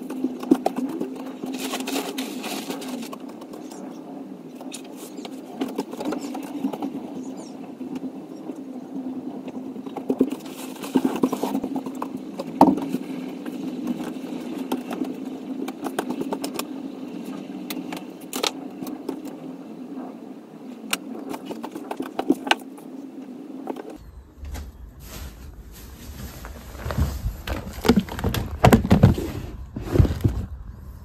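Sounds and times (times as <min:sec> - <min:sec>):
bedding and belongings rustling: 0:00.0 - 0:30.9
steady low hum: 0:00.0 - 0:31.0.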